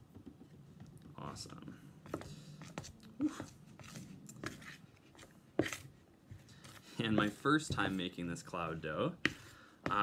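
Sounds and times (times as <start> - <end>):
spoon scraping thick dough: 2.1 - 10.0.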